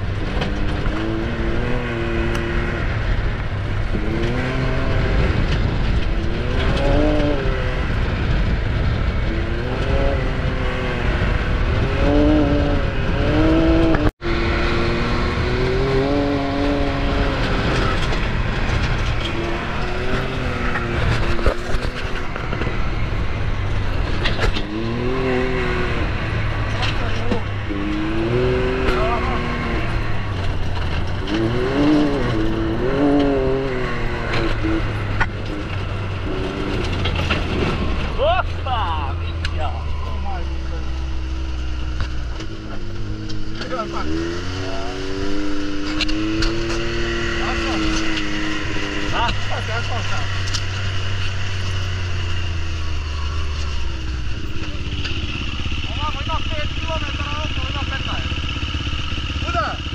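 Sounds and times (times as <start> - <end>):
engine revving: 0.0 - 59.9
rumble of tyres and wind: 0.0 - 59.9.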